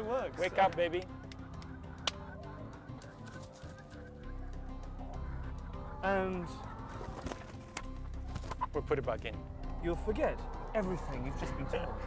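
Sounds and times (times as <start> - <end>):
hen clucking softly: 1.0 - 7.5.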